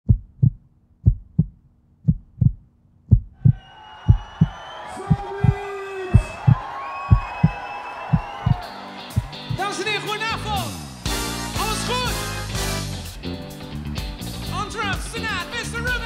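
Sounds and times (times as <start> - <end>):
heartbeat thumps: 0.0 - 8.6
crowd noise: 3.5 - 13.5.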